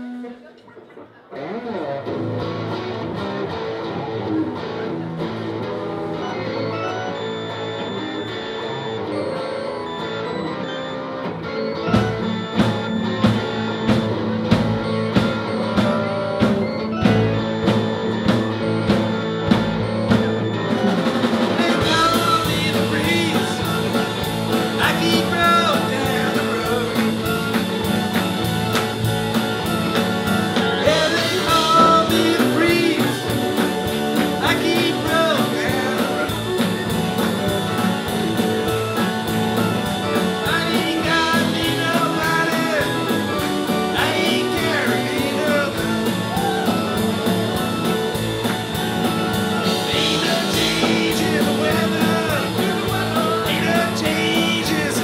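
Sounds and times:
electric guitar riff: 0:00.0 - 0:55.0
bass and keyboards: 0:02.0 - 0:55.0
drums steady beat: 0:12.0 - 0:55.0.

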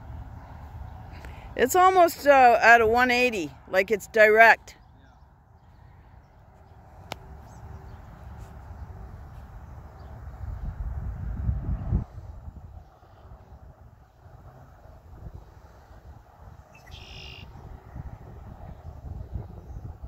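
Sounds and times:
wind buffeting microphone: 0:04.8 - 0:20.0.

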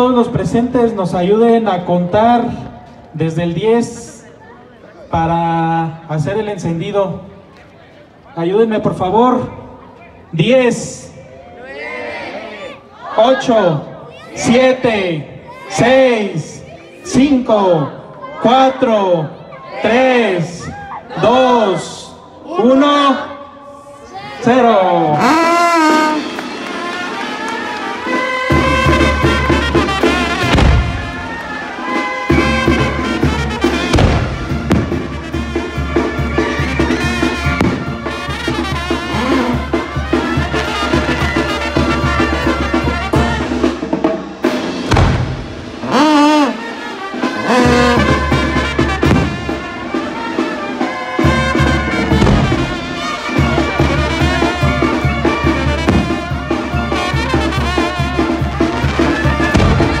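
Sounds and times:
brass band playing: 0:25.0 - 1:00.0.

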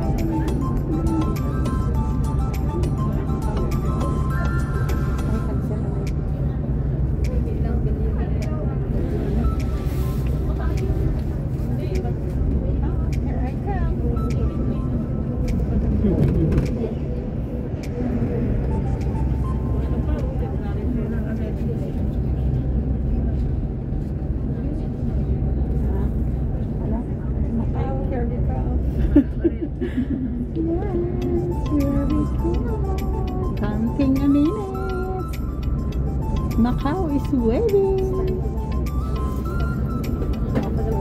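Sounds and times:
bus engine and tyres droning: 0:00.0 - 0:41.0.

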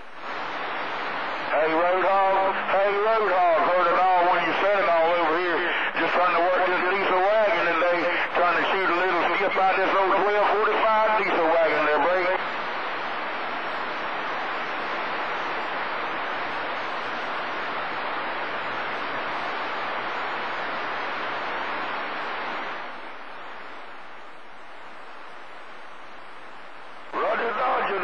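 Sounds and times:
radio static hiss: 0:00.0 - 0:28.0.

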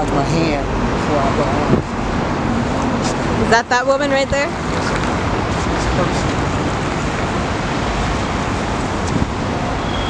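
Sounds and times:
street traffic noise: 0:00.0 - 0:10.0
wind on microphone: 0:00.4 - 0:10.0.

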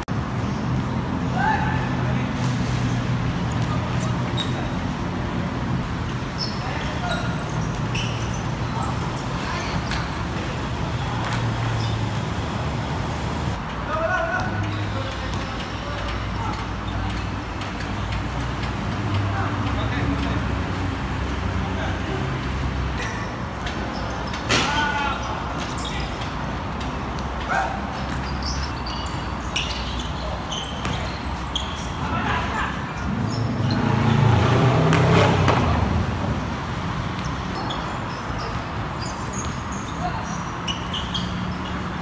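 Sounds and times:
low rumble of road traffic: 0:00.0 - 0:42.0
loud shout: 0:01.3 - 0:02.3, 0:24.5 - 0:25.4, 0:27.4 - 0:27.9, 0:32.0 - 0:32.9
players calling out: 0:13.8 - 0:35.9, 0:37.1 - 0:42.0
basketball bouncing: 0:30.7 - 0:31.8.

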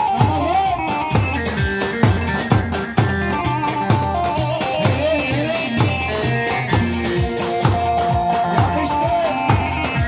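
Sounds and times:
folk dance music over sound system: 0:00.0 - 0:10.0.

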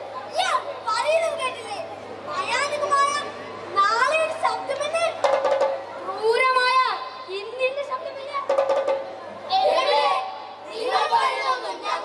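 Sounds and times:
children speaking loudly: 0:00.0 - 0:12.0.

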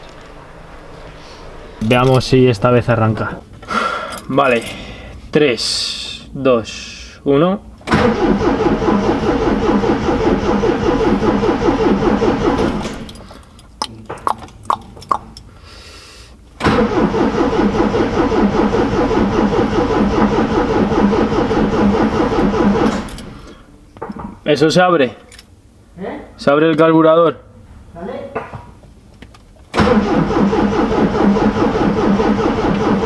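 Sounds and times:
car engine cranking on starter motor: 0:07.8 - 0:13.7, 0:16.6 - 0:23.7, 0:29.7 - 0:33.0.

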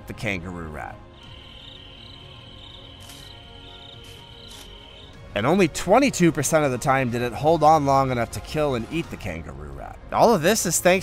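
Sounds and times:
soft droning background music: 0:00.0 - 0:11.0
chirps: 0:01.2 - 0:05.2
high insect-like trill: 0:01.2 - 0:05.2.

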